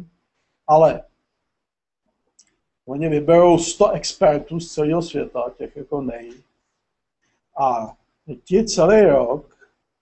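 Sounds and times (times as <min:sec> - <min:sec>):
man speaking: 0:00.7 - 0:01.2, 0:02.8 - 0:06.5, 0:07.6 - 0:09.6.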